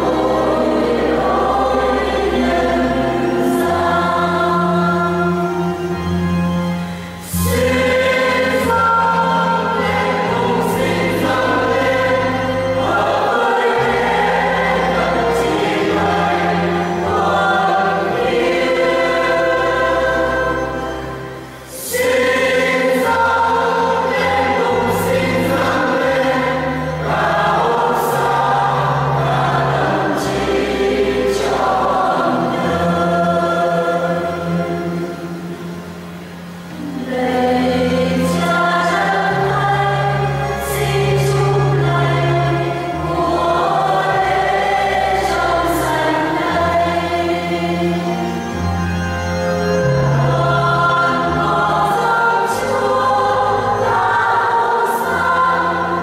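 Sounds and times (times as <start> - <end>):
choir singing a hymn: 0.0 - 56.0
held bass accompaniment: 0.0 - 56.0.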